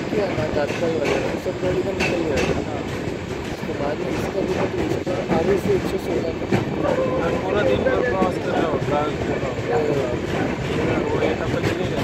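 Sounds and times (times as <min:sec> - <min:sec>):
people talking: 0:00.0 - 0:02.9, 0:03.5 - 0:12.0
train wheels rumbling on rails: 0:00.0 - 0:12.0.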